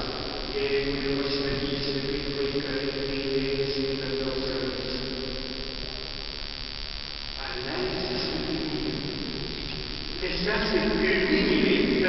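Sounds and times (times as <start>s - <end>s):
person chanting: 0.0s - 5.3s, 7.4s - 9.5s.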